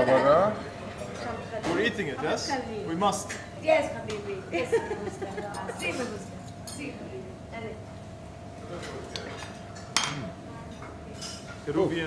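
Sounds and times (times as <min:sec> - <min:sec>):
cutlery clinking on tableware: 0:08.8 - 0:10.2.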